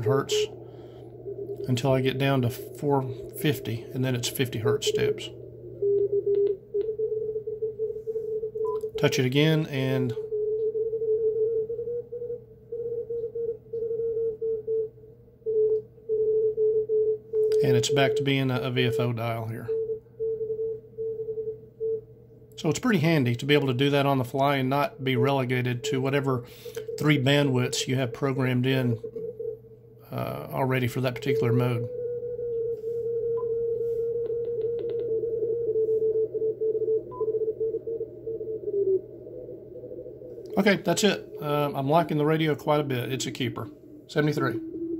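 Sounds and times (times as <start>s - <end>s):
radio band noise: 0.0s - 6.7s, 22.6s - 29.3s, 30.1s - 32.0s, 37.9s - 44.8s
morse code tone: 0.0s - 14.9s, 15.5s - 22.0s, 22.6s - 44.9s.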